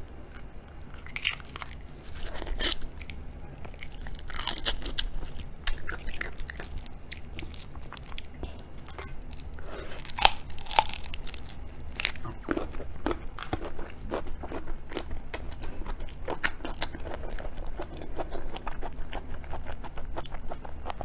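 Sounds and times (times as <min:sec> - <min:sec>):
prawn shell crackling and snapping: 0:01.0 - 0:08.3, 0:09.3 - 0:12.3
crunch of biting prawn: 0:09.9 - 0:12.7.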